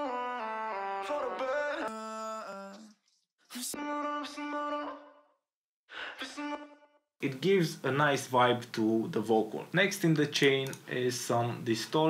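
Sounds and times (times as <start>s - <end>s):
sung vocal harmony with echo: 0.0s - 5.3s, 5.9s - 6.8s.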